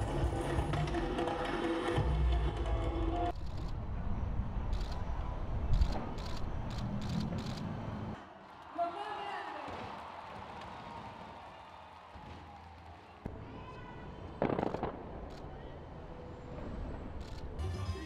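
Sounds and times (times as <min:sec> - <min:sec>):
fireworks crackling and banging: 0:09.6 - 0:13.6, 0:14.2 - 0:15.5.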